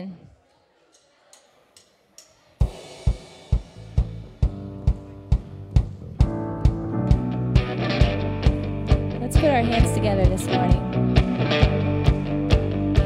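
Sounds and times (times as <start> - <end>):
band playing held chords: 2.6 - 13.0
steady drum beat: 2.6 - 13.0
keyboard chords: 4.4 - 13.0.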